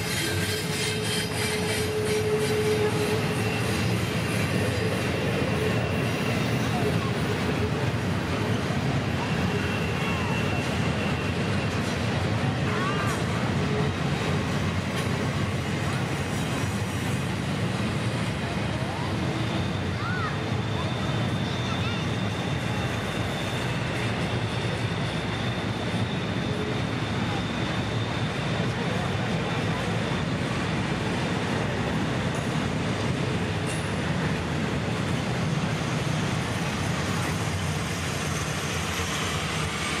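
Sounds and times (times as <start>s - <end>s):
freight train wheels rumbling: 0.0s - 40.0s.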